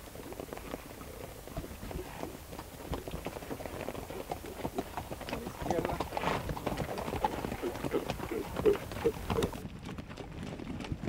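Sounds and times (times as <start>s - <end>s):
horse hoofbeats on wet dirt: 0.0s - 11.0s.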